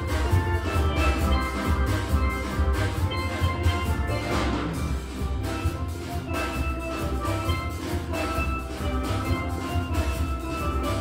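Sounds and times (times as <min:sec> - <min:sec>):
steel band playing: 0:00.0 - 0:11.0.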